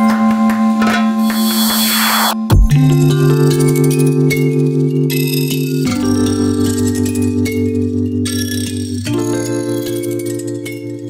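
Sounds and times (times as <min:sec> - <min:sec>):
noise sweep: 0:01.3 - 0:02.7.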